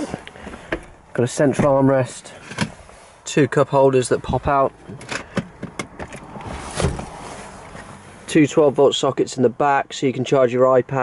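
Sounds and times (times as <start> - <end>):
rustling: 6.4 - 8.3.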